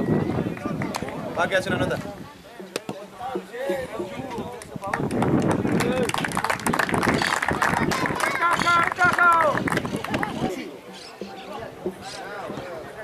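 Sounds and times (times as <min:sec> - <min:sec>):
sharp claps: 0:00.4 - 0:01.2, 0:04.0 - 0:11.4
people shouting and calling out: 0:07.2 - 0:13.0.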